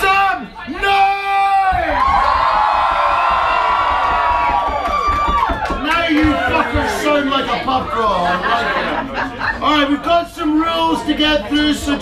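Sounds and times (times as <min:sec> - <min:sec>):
man shouting: 0:00.0 - 0:02.0
crowd cheering: 0:00.7 - 0:09.3.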